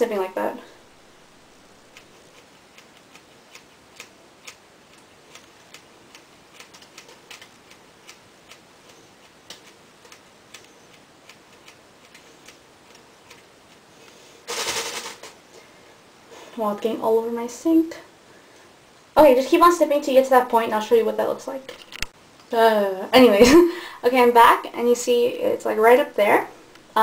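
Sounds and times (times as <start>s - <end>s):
scissors snipping hair: 2.0s - 13.8s.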